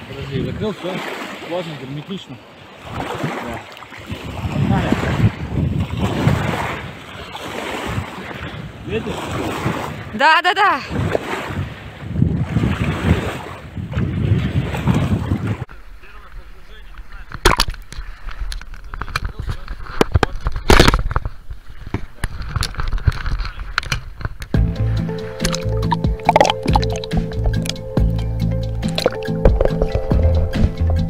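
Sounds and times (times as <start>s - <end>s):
wind and water noise: 0.0s - 31.0s
music: 24.5s - 31.0s
sharp knocks and clicks: 25.4s - 27.8s.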